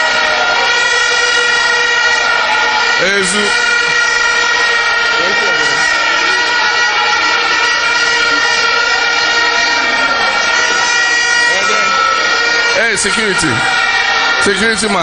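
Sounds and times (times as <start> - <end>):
steady droning tones: 0.0 - 15.0.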